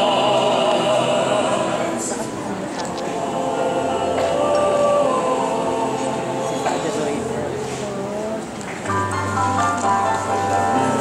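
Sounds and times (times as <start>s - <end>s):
mixed choir singing chords: 0.0s - 8.5s.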